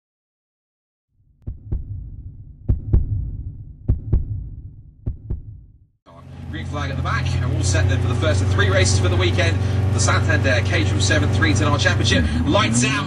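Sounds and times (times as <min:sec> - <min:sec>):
heartbeat thumps: 0:01.4 - 0:05.8
low rumble: 0:01.4 - 0:05.8.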